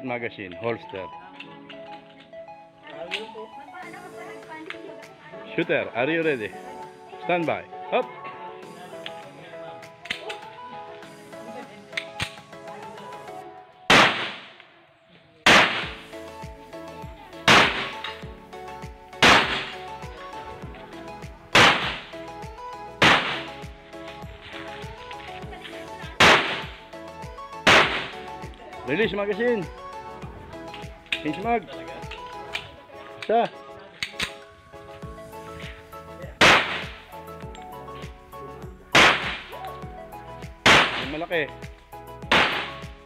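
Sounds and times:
background music: 0.0 - 43.0
pistol shots: 13.9 - 14.6, 15.5 - 16.0, 17.5 - 18.1, 19.2 - 19.8, 21.6 - 22.0, 23.0 - 23.5, 26.2 - 26.8, 27.6 - 28.2, 36.4 - 37.0, 39.0 - 39.5, 40.6 - 41.1, 42.3 - 42.8.

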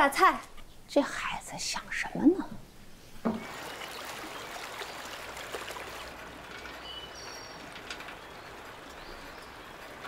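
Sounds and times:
stream running over stones: 3.4 - 7.6.

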